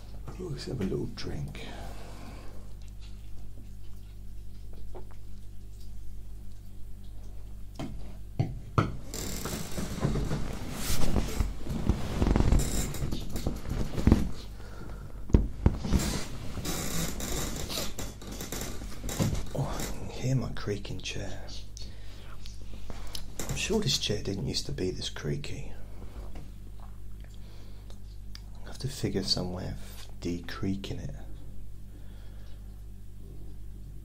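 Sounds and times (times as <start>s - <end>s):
steady low hum: 0.0s - 34.0s
creaky chair creaks and knocks: 8.8s - 14.5s, 15.3s - 20.0s, 23.2s - 23.8s.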